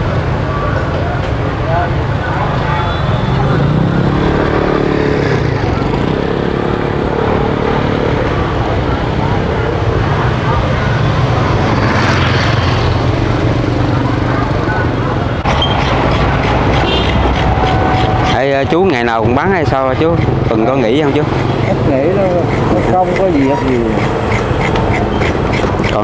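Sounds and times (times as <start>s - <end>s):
motorbike engines running: 0.0s - 26.0s.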